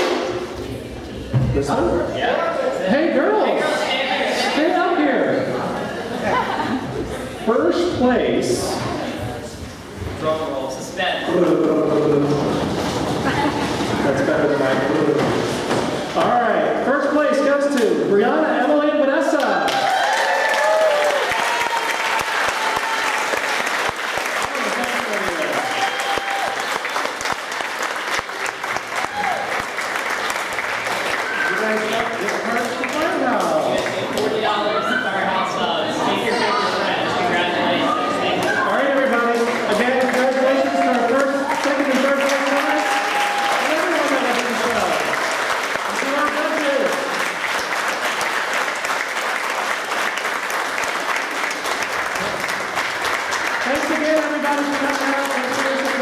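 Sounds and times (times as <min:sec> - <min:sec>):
audience applauding: 0:19.4 - 0:34.5, 0:38.3 - 0:56.0.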